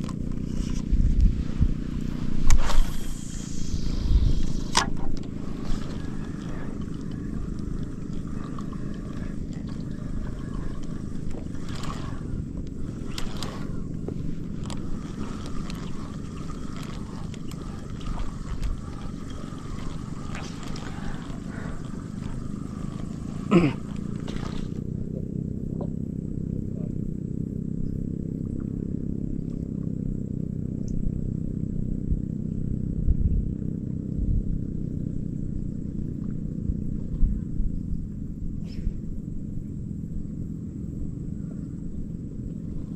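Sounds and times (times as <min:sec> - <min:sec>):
steady low rumble: 0:00.0 - 0:42.9
man clearing his throat: 0:23.4 - 0:24.0.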